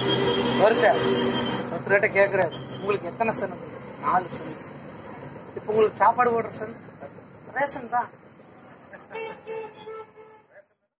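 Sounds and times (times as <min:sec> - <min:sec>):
man laughing: 0:08.8 - 0:09.5.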